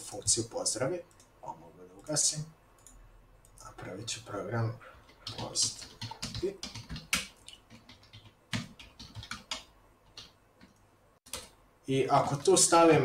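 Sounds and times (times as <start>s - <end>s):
computer keyboard typing: 2.8s - 3.9s, 4.9s - 11.6s.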